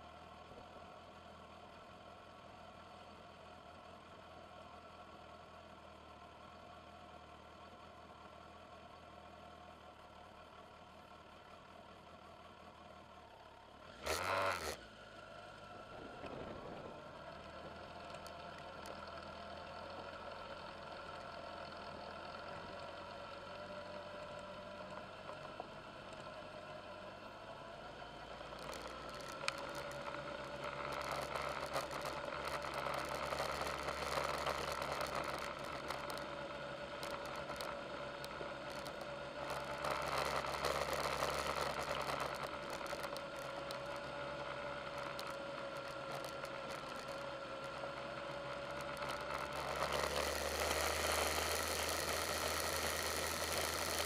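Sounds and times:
vehicle engine running: 0.0 - 54.0
gravel crunching under tyres: 28.0 - 54.0.

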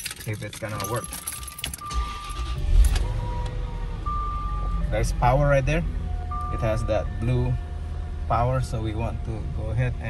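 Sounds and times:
keys jingling: 0.0 - 3.0
car engine starting and idling: 0.0 - 10.0.

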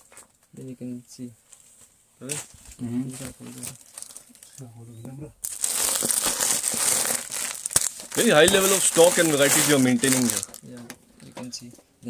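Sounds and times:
plastic wrapping crinkling: 2.4 - 4.6, 5.4 - 10.9.

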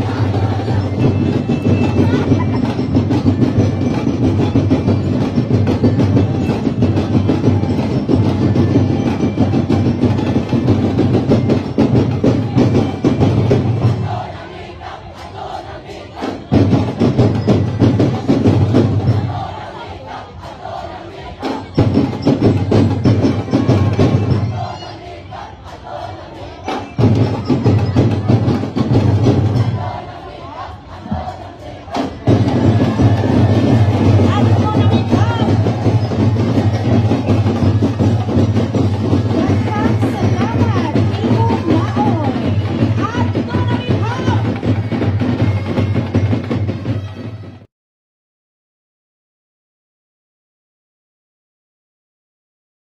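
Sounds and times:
drum band playing fast beat: 0.0 - 14.7, 16.2 - 19.8, 20.6 - 25.0, 26.0 - 30.2, 30.9 - 47.7
crowd shouting: 0.0 - 47.7.

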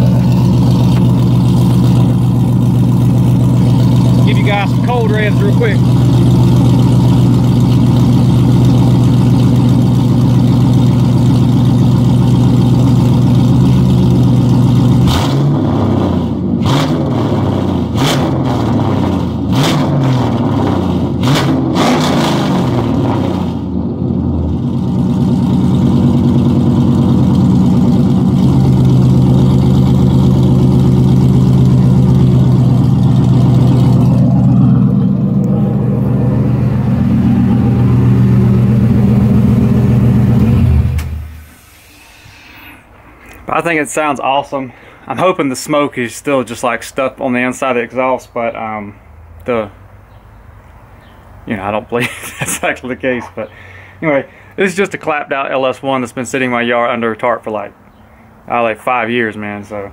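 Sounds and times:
car engine idling and revving: 0.0 - 43.6.

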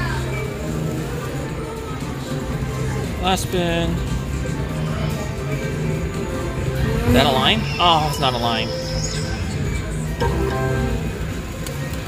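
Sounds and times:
slot machine musical tones: 9.9 - 11.6.

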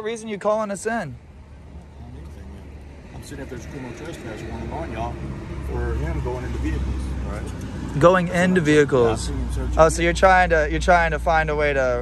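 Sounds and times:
engine idling rumble: 0.2 - 12.0.

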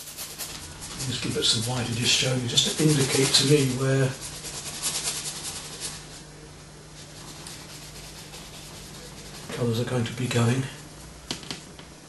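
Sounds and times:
bristle brush scrubbing canvas: 0.0 - 6.2, 7.0 - 9.8.

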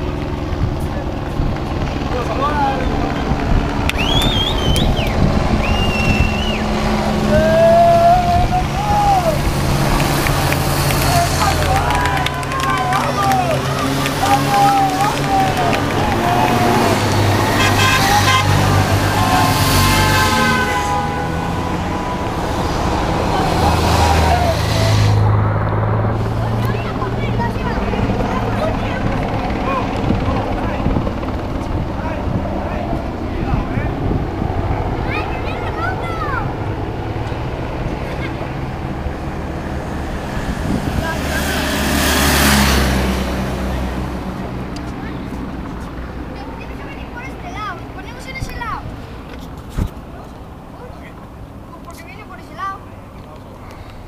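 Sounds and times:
motorcycles and cars passing: 0.0 - 54.0
spectators' voices: 0.6 - 41.9
horn toots: 3.9 - 25.2.

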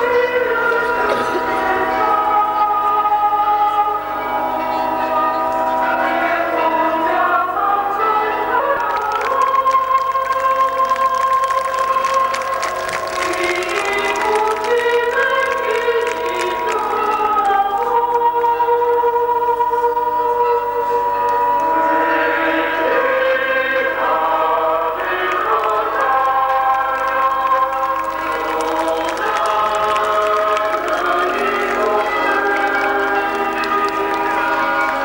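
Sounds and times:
crowd singing slow held notes: 0.0 - 4.5, 5.4 - 35.0.

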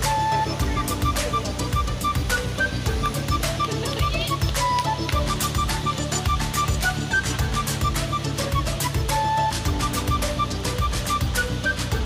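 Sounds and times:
background music with beat: 0.0 - 12.0.

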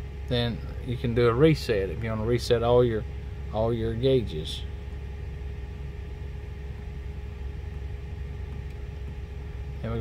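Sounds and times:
diesel truck engine idling: 0.0 - 10.0
faint steady hum: 0.0 - 10.0.

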